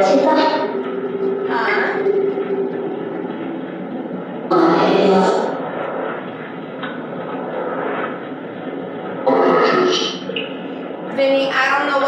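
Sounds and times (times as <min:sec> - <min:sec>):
radio static hiss: 0:08.8 - 0:11.9.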